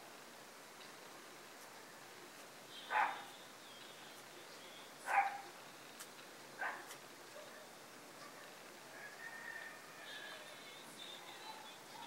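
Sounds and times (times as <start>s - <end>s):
dog barking: 2.9s - 3.3s, 5.0s - 5.5s, 6.6s - 8.5s.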